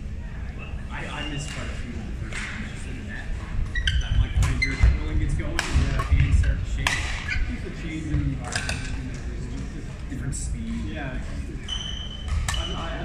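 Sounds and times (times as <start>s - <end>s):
shoes squeaking: 3.3s - 9.8s, 10.6s - 13.0s.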